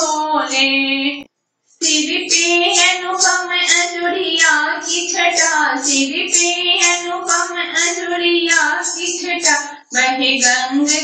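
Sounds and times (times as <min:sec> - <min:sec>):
person singing folk devotional song: 0:01.8 - 0:11.0.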